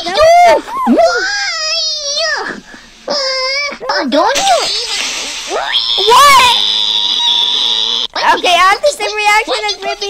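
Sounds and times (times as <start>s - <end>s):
steady high hiss: 1.6s - 8.1s.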